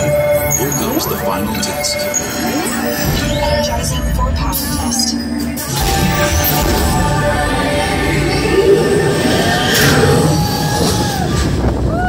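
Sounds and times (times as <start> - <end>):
ride vehicle rumbling at speed: 5.8 - 12.0.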